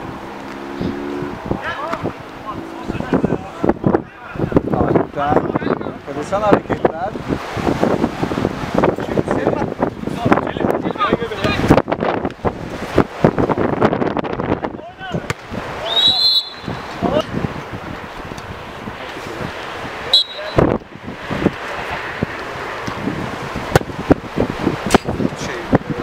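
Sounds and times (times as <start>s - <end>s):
players shouting: 14.8s - 17.2s, 20.0s - 20.7s
short high whistle tones: 15.8s - 16.8s, 20.1s - 20.6s.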